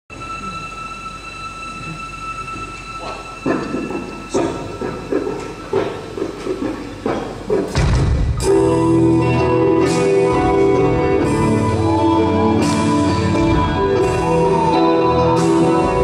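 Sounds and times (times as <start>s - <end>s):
low hall rumble: 0.1s - 16.0s
sharp hits: 5.7s - 8.8s
band with bass and electric guitar: 7.8s - 16.0s.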